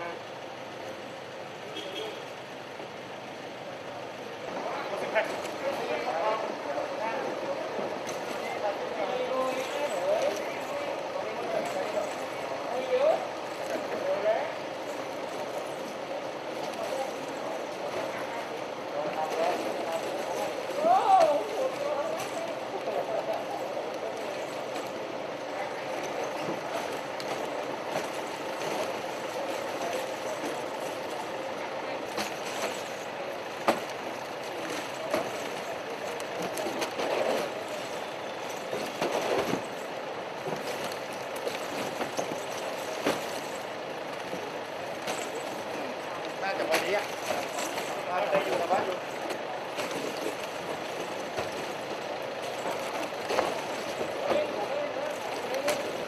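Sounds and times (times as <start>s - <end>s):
chatter of people: 3.8s - 56.0s.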